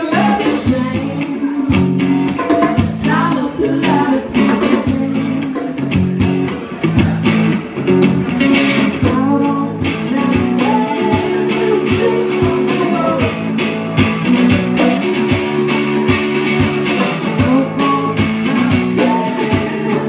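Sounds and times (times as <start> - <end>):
person singing: 0.0 - 1.9, 2.8 - 5.8, 8.4 - 13.6, 16.8 - 20.0
electric guitar: 0.0 - 20.0
hand drum and cajon percussion: 0.0 - 20.0.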